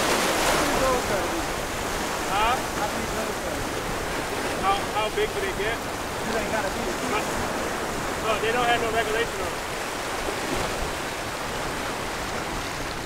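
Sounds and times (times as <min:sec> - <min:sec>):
surf washing over rocks: 0:00.0 - 0:13.0.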